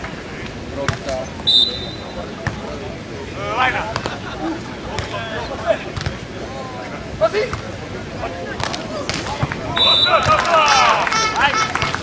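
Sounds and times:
high whistle-like tone: 0:01.4 - 0:02.2, 0:09.7 - 0:10.2
volleyball slap: 0:06.0 - 0:06.2, 0:08.6 - 0:11.0.

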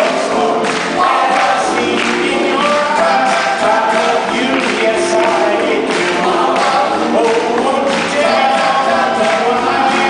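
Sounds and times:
guitar: 0:00.0 - 0:10.0
vocal group singing in harmony: 0:00.0 - 0:10.0.

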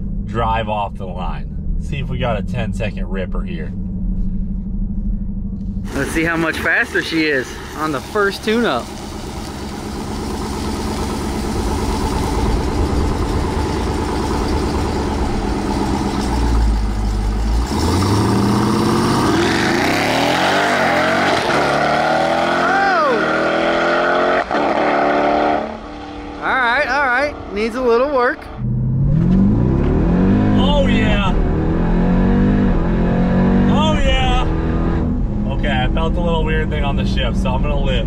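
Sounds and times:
car engine revving: 0:00.0 - 0:38.0.

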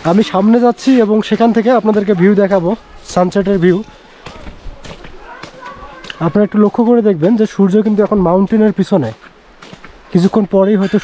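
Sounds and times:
man speaking: 0:00.0 - 0:04.6, 0:05.2 - 0:09.2, 0:10.1 - 0:11.0.

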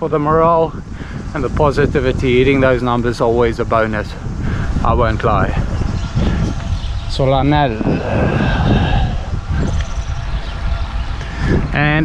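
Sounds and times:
wind and tyre rumble: 0:00.0 - 0:12.0
cyclist vocal sound: 0:07.4 - 0:09.8.

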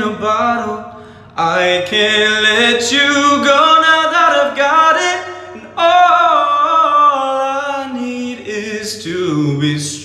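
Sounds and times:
man singing: 0:00.0 - 0:10.0.

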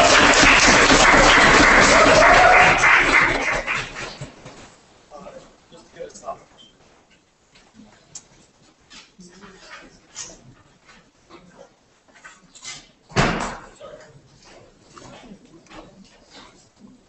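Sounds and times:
faint murmuring: 0:05.1 - 0:12.9, 0:13.7 - 0:17.0.

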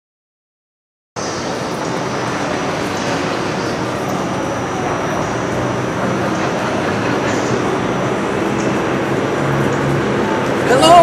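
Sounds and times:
rushing outdoor din: 0:01.2 - 0:11.0.

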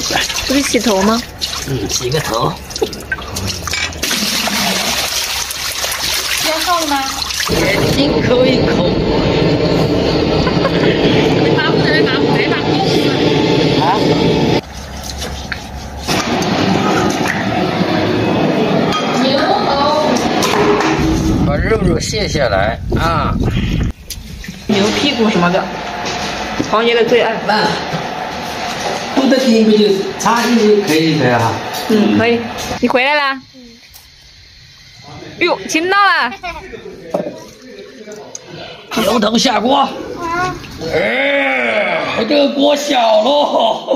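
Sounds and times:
steel wool scrubbing in water: 0:00.0 - 0:07.8, 0:14.6 - 0:17.3.

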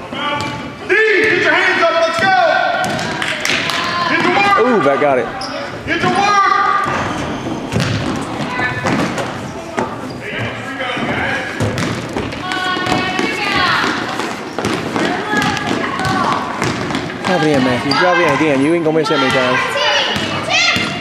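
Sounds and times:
voices in gymnasium: 0:00.0 - 0:21.0
basketball bouncing: 0:02.1 - 0:04.6, 0:06.8 - 0:09.9, 0:11.0 - 0:18.6, 0:19.2 - 0:21.0.

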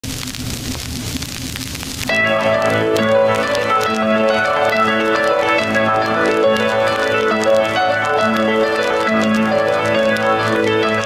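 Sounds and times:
vinyl crackle and pops: 0:00.0 - 0:11.0.

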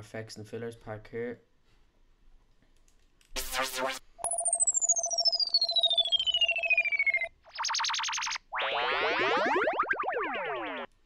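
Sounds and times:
pitch gliding sweep: 0:03.4 - 0:10.9
pulsing tone: 0:03.4 - 0:10.9
falling whistle: 0:04.2 - 0:10.9.

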